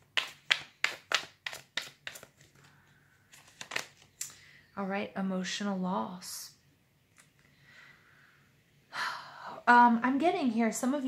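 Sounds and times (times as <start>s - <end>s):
cards being shuffled by hand: 0.0s - 4.2s.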